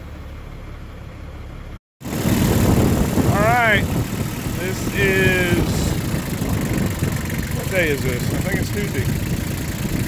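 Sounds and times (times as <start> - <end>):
tractor engine running: 0.0 - 10.0
wind noise on microphone: 2.0 - 10.0.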